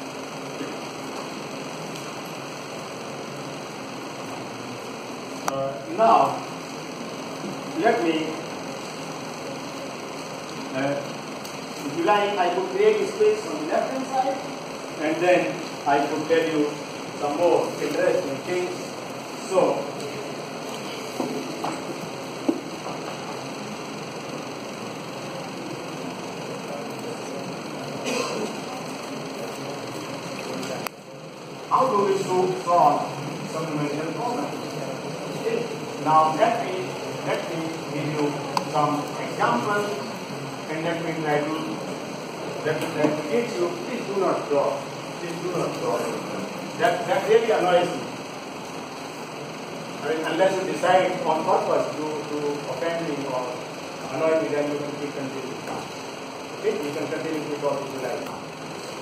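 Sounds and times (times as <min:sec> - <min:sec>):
classroom background noise: 0:00.0 - 0:59.0
steady room hiss: 0:00.0 - 0:59.0.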